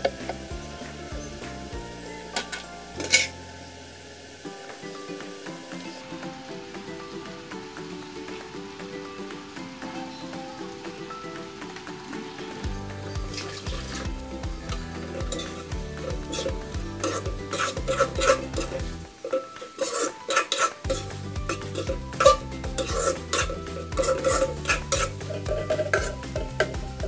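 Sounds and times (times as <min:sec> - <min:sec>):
bass beat: 0:00.0 - 0:02.3, 0:12.7 - 0:19.1, 0:20.9 - 0:27.0
background music with melody: 0:00.0 - 0:27.0
food sizzling in a wok: 0:00.0 - 0:27.0.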